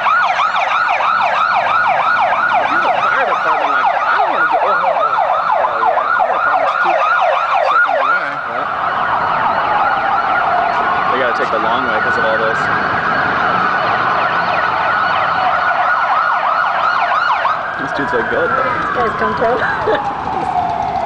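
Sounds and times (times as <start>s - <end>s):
emergency vehicle siren: 0.0s - 21.0s.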